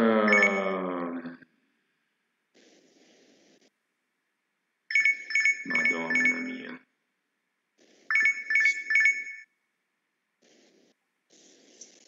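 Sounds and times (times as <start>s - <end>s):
mobile phone ringtone: 0.3s - 0.8s, 4.9s - 6.7s, 8.1s - 9.5s.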